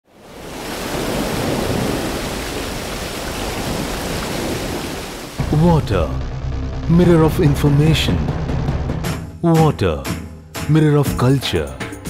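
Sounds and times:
white water rushing: 0:00.1 - 0:06.2.

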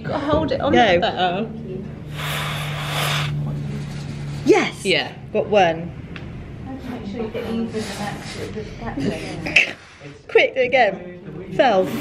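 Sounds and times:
steady low hum: 0:00.6 - 0:10.4
hiss: 0:02.1 - 0:03.4.

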